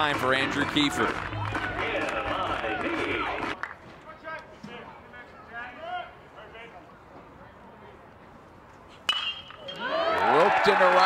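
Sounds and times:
crowd shouting and cheering: 0:00.0 - 0:03.6, 0:09.6 - 0:11.0.

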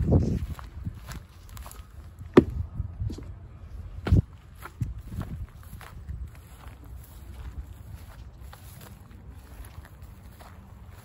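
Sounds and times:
footsteps on gravelly dirt: 0:00.0 - 0:03.3, 0:03.9 - 0:11.0.

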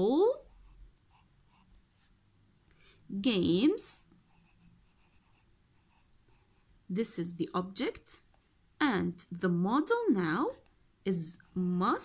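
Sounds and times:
pencil scratching on paper: 0:00.3 - 0:02.1, 0:03.9 - 0:06.7, 0:10.4 - 0:12.0.

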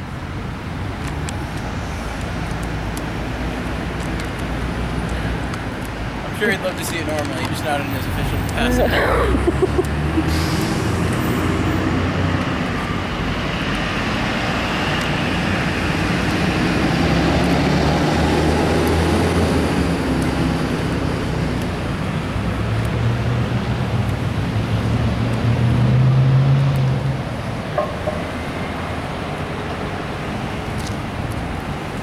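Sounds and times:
cars and trucks driving past: 0:00.0 - 0:32.0
vehicle engine revving close by: 0:13.9 - 0:21.5, 0:22.6 - 0:27.3.

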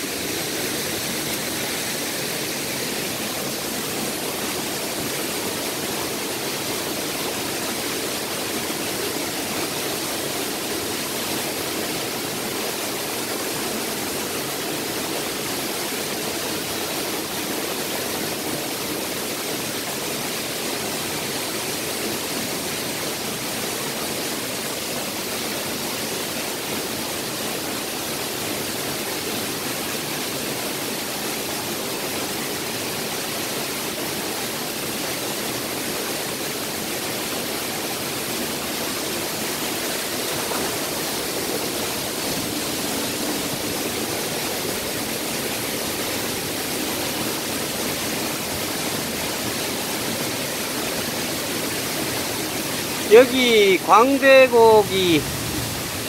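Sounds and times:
waterfall rushing: 0:00.0 - 0:56.0.

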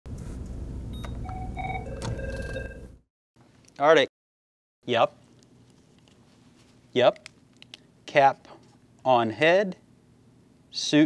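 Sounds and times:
desk phone electronic ringer beeping: 0:01.0 - 0:02.8.

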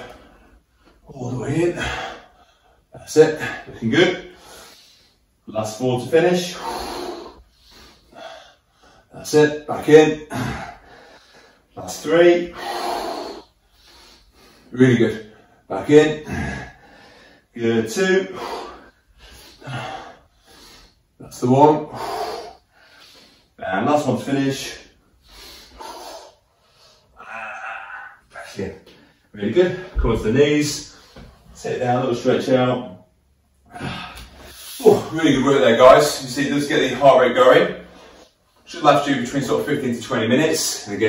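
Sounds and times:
man breathing: 0:01.7 - 0:02.9, 0:04.2 - 0:05.5, 0:06.4 - 0:09.2, 0:10.3 - 0:11.8, 0:12.4 - 0:17.6, 0:18.2 - 0:21.2, 0:21.8 - 0:23.6, 0:24.6 - 0:30.0, 0:30.8 - 0:31.6, 0:37.7 - 0:38.7.

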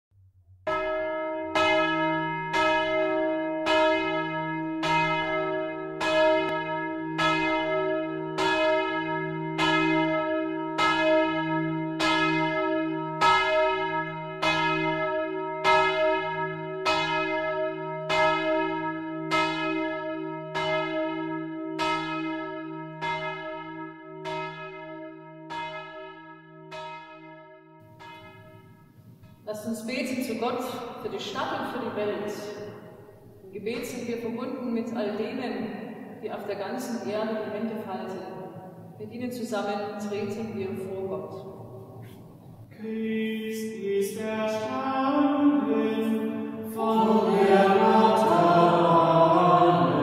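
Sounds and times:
church bell tolling: 0:00.7 - 0:42.8, 0:43.6 - 0:50.0.

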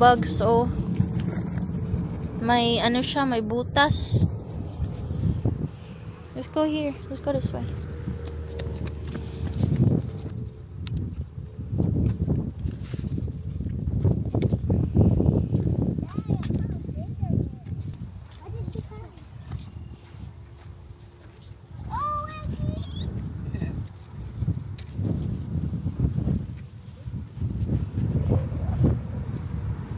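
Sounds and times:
wind rumbling on microphone: 0:00.0 - 0:29.9
footsteps on sandy soil: 0:07.7 - 0:10.4, 0:17.4 - 0:21.7.

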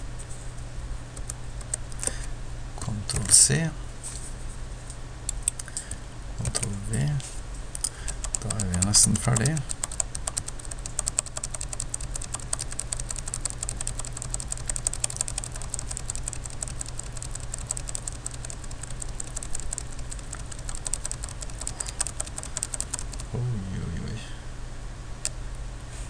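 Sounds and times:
steady low hum: 0:00.0 - 0:26.0
computer keyboard keys clicking: 0:05.3 - 0:05.8, 0:06.4 - 0:06.7, 0:07.8 - 0:23.3.

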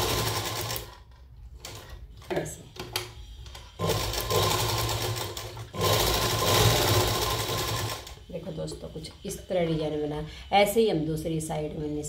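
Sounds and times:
sewing machine stitching: 0:00.0 - 0:01.0, 0:03.6 - 0:08.2.

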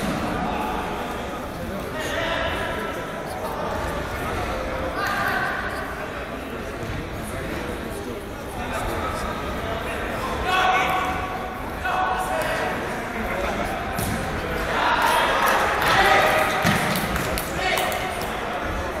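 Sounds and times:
voices calling out in a hall: 0:00.0 - 0:19.0.

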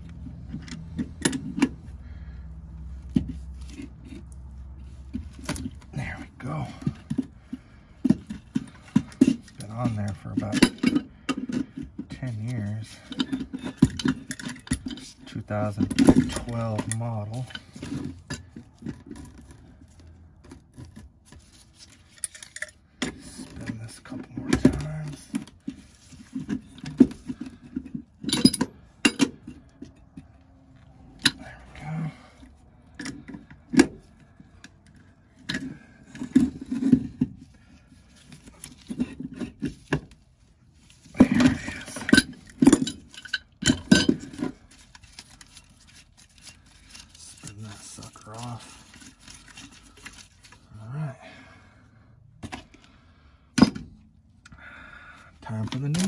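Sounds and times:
metal pipes clattering on wood floor: 0:08.0 - 0:19.3, 0:24.5 - 0:30.0, 0:41.2 - 0:44.6.

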